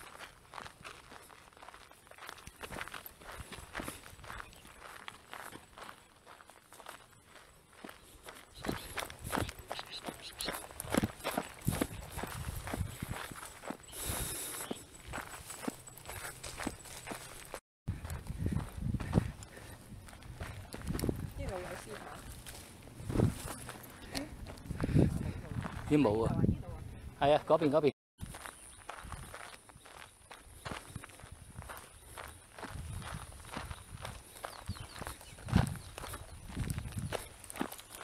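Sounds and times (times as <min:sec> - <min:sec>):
footsteps crunching on dirt trail: 0:00.0 - 0:26.4, 0:28.2 - 0:38.0.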